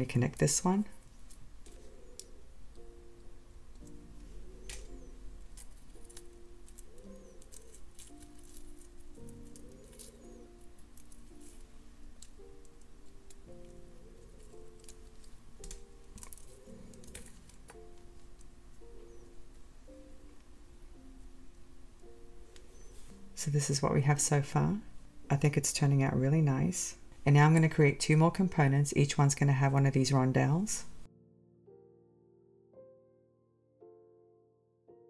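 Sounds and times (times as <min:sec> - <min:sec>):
soft background music: 0:00.0 - 0:35.0
metal jewelry findings clicking: 0:05.6 - 0:11.6.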